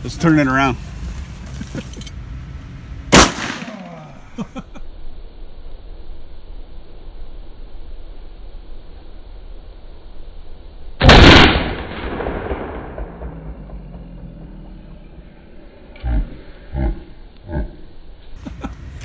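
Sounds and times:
shotgun shot: 3.1s - 4.1s, 11.0s - 14.5s.

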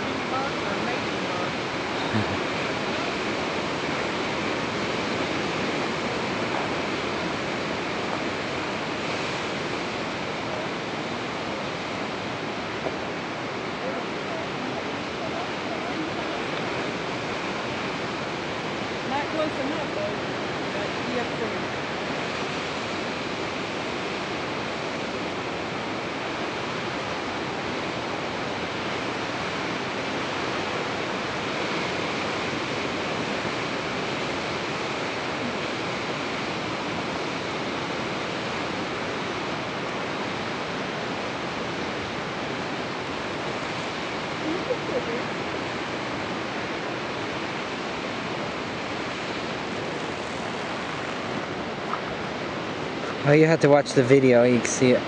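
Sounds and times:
waves breaking on shore: 0.0s - 55.0s.

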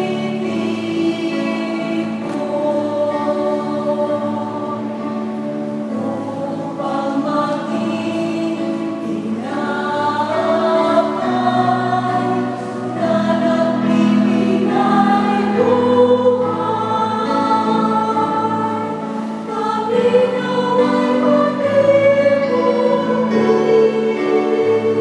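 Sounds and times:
choir singing a hymn: 0.0s - 25.0s.

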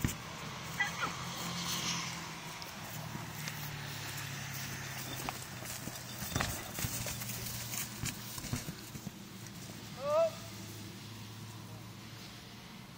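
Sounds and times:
horse hooves thudding on turf: 0.0s - 10.0s.

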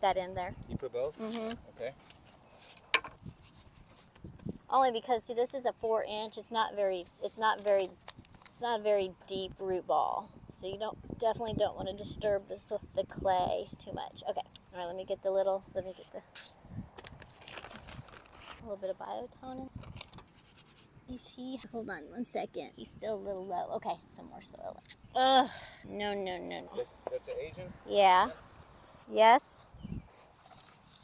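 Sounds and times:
plastic bag rustling: 17.0s - 18.7s
hands scraping soil: 20.0s - 20.9s, 30.1s - 31.0s.

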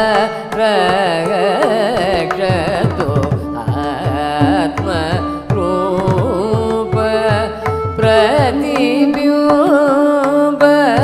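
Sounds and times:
tanpura drone: 0.0s - 10.6s
classical singing: 0.0s - 11.0s
violin: 0.0s - 11.0s.

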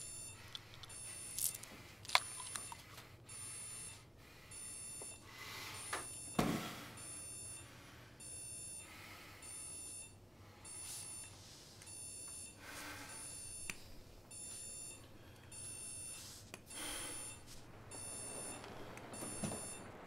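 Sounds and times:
electronic alarm beeping: 0.0s - 6.4s, 7.0s - 20.0s.

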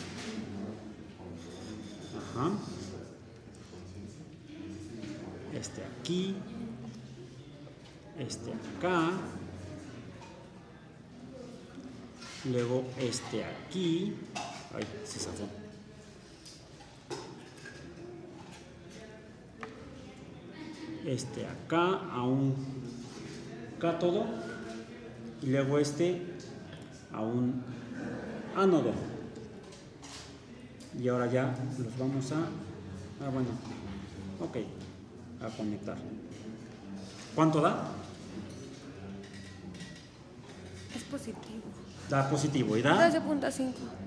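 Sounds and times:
faint indistinct voices: 0.0s - 44.0s
faint room noise: 0.0s - 44.0s.

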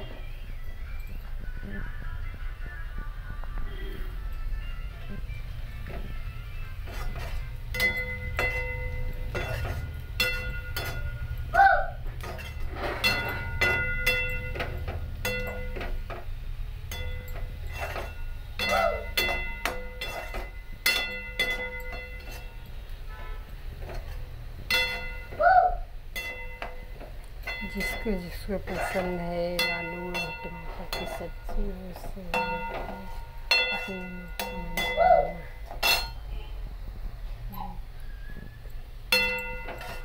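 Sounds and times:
metal spatula scraping a pan: 6.7s - 11.4s, 12.1s - 16.3s, 16.9s - 25.4s, 26.2s - 36.3s, 39.1s - 40.0s.

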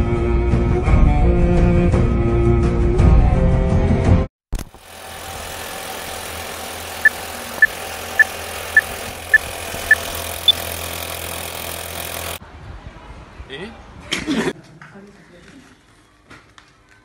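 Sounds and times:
film projector whir and hiss: 4.7s - 12.4s.

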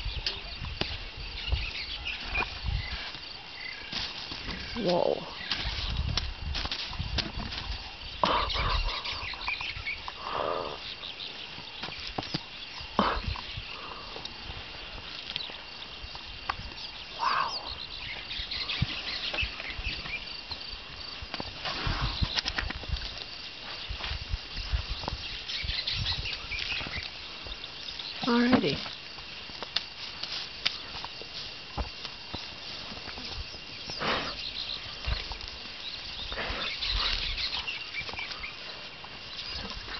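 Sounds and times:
elephant rustling: 0.0s - 17.1s, 17.7s - 39.9s
insect drone: 0.0s - 39.9s.

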